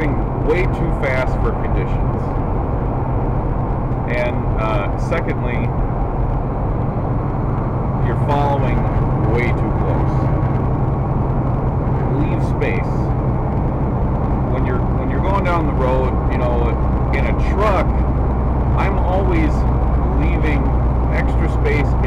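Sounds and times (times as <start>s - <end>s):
truck engine drone and road noise: 0.0s - 22.0s.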